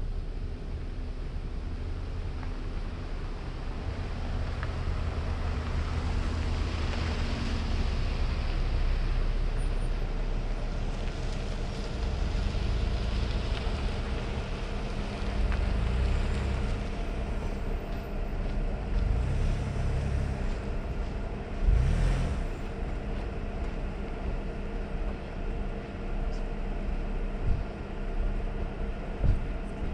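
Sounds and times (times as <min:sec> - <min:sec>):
motor vehicle droning: 0:00.0 - 0:29.9.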